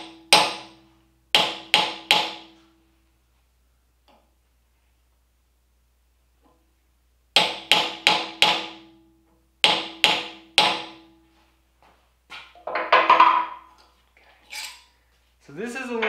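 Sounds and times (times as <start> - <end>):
metallic tool clatter: 14.4 - 14.9.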